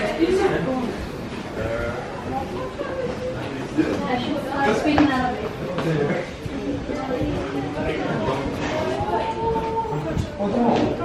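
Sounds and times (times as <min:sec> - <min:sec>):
people talking as they walk: 0:00.0 - 0:11.0.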